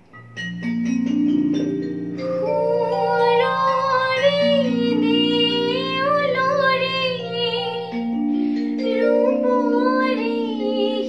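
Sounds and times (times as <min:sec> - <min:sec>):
electronic keyboard chords: 0:00.0 - 0:11.0
woman singing: 0:02.4 - 0:11.0.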